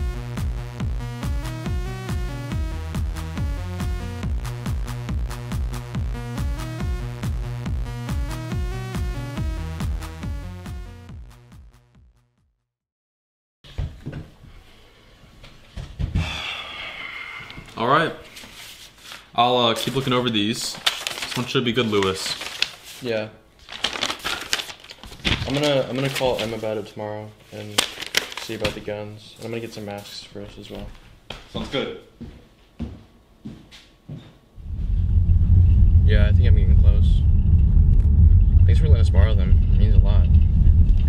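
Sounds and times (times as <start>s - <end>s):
car rumble inside cabin: 34.6s - 41.0s
soft low thumps: 34.6s - 41.0s.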